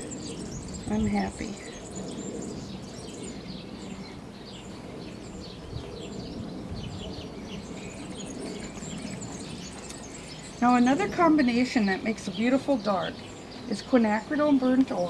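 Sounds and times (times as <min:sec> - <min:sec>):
low outdoor rumble: 0:00.0 - 0:15.0
small birds chirping: 0:00.0 - 0:15.0.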